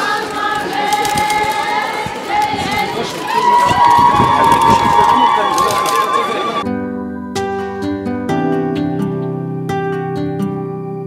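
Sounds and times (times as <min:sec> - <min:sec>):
crowd talking and calling out: 0:00.0 - 0:06.7.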